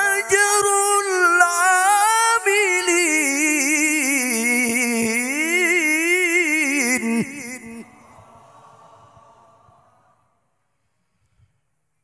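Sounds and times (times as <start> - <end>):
man reciting melodically: 0.0 - 8.2.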